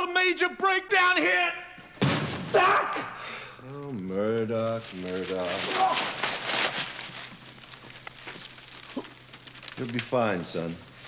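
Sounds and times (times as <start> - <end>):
paper sheet crinkling: 4.3 - 11.0.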